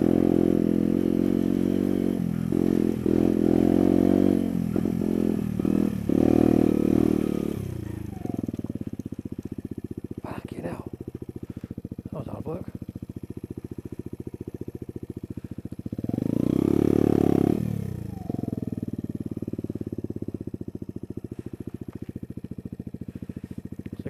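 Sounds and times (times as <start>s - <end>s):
motorcycle engine revving: 0.0s - 24.0s.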